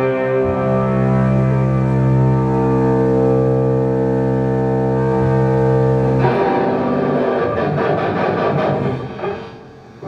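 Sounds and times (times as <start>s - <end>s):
distorted electric guitar drone: 0.0s - 10.0s.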